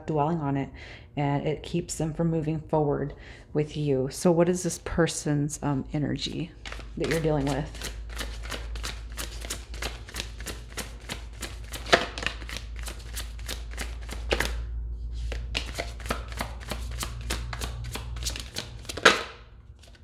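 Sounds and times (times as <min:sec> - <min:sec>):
low steady hum: 0:00.0 - 0:20.0
cards being shuffled: 0:06.6 - 0:14.6, 0:15.2 - 0:20.0.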